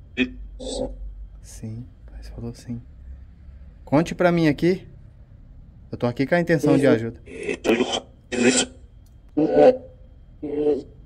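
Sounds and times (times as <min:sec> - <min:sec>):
radio static bursts: 0:06.7 - 0:08.7.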